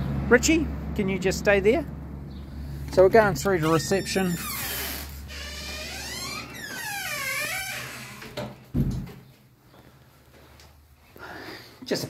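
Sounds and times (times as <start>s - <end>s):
door hinges squeaking: 3.2s - 9.1s
thump: 8.8s - 9.1s.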